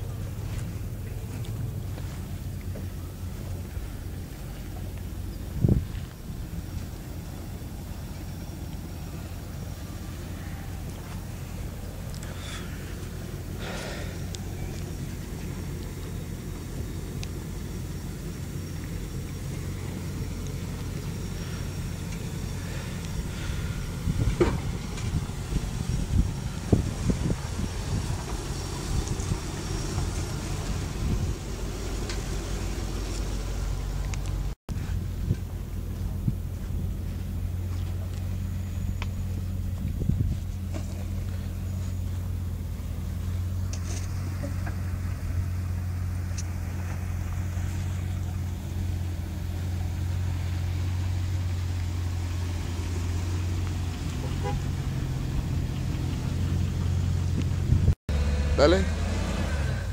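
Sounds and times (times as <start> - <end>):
engine running at low revs: 0.0 - 59.9.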